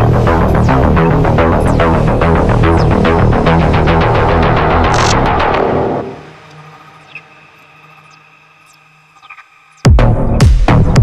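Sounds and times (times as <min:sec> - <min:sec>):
low synth drone: 0:00.0 - 0:10.4
electronic blip: 0:04.8 - 0:05.6.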